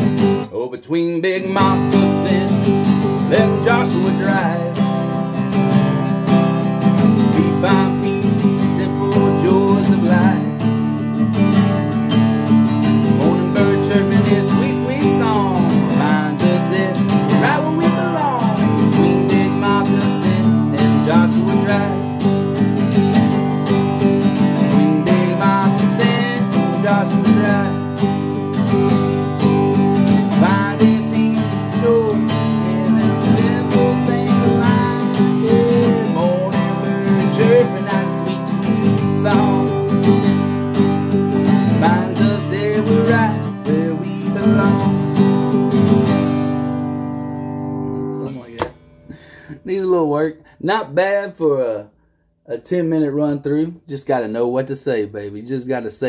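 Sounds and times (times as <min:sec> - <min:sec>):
man singing: 0:00.0 - 0:10.8, 0:12.8 - 0:23.3, 0:24.2 - 0:46.0, 0:49.5 - 0:51.9, 0:52.5 - 0:56.0
acoustic guitar strumming: 0:00.0 - 0:51.7.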